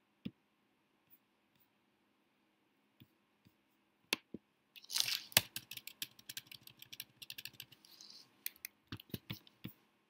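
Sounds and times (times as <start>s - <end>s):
computer keyboard typing: 5.4s - 9.4s.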